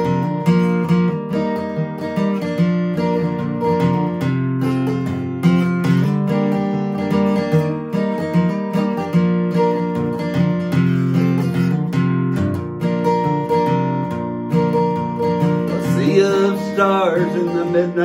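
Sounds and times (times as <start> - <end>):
acoustic guitar chords: 0.0 - 18.0
man singing: 15.7 - 18.0.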